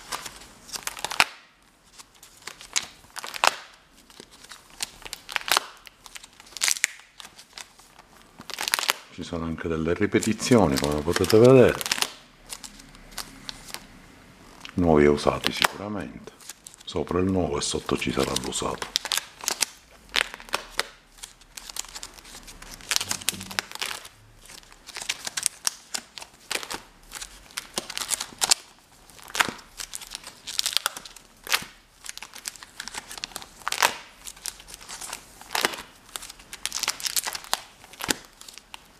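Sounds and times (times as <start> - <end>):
plastic sleeve pages crinkling: 0.0 - 38.9.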